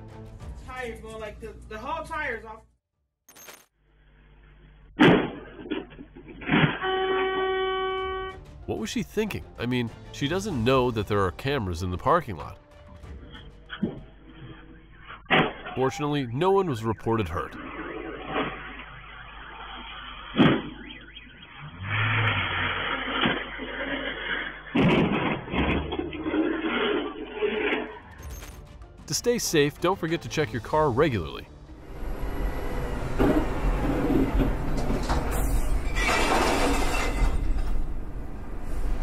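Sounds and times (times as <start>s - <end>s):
car horn steady note: 6.7s - 8.5s
car engine revving: 31.7s - 35.9s.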